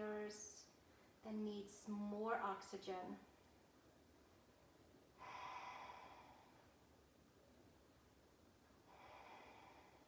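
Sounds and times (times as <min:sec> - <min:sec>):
faint breath through nose: 0:08.9 - 0:10.0.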